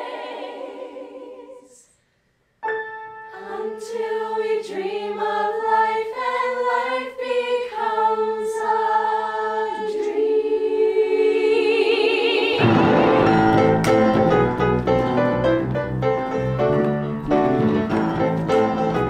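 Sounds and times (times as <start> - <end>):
mixed voices singing a cappella: 0.0 - 2.0, 3.3 - 13.4.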